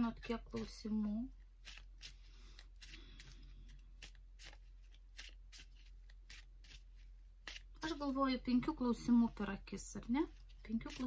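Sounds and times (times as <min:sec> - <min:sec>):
cards swishing while shuffled: 0:01.6 - 0:08.1.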